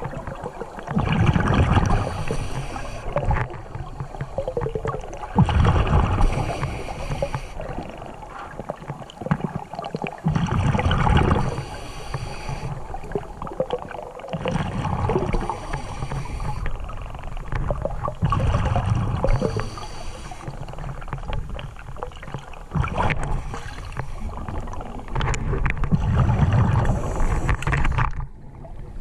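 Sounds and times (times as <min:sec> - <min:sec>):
bubbles gurgling underwater: 0:00.0 - 0:29.0.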